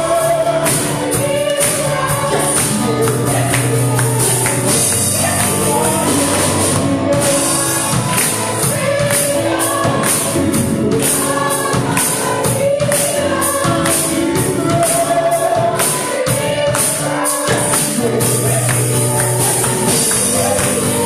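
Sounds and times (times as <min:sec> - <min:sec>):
women singing gospel song: 0:00.0 - 0:21.0.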